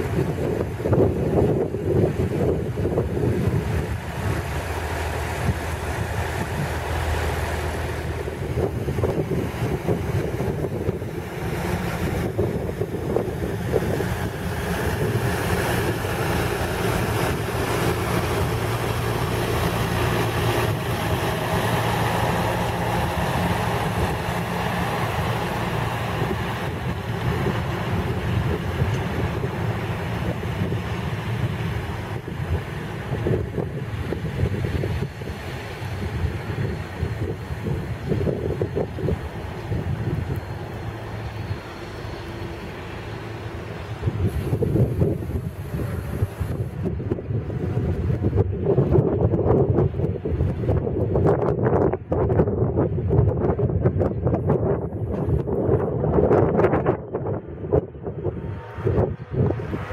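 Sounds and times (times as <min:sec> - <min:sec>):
train engine hum and rolling: 0:00.0 - 0:59.9
wind buffeting microphone: 0:00.0 - 0:59.9.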